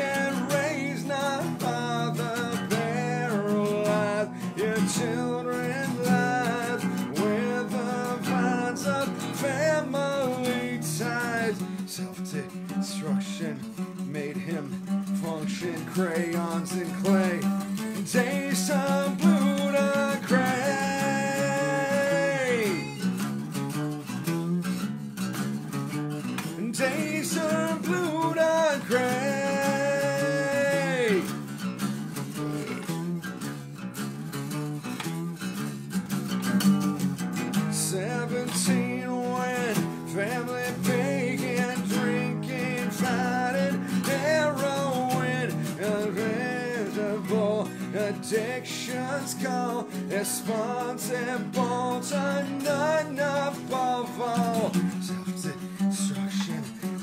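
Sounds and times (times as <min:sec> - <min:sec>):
man singing: 0:00.0 - 0:23.2, 0:26.4 - 0:31.5, 0:37.5 - 0:57.0
acoustic guitars strumming: 0:00.0 - 0:57.0.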